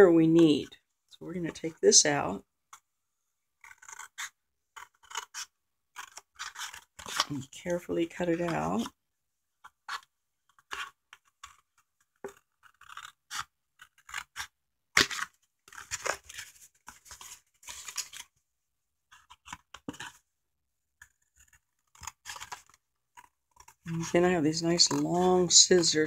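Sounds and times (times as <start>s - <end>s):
scissors snipping cardboard: 3.6s - 7.4s, 9.6s - 18.3s, 19.1s - 20.2s, 21.0s - 25.9s.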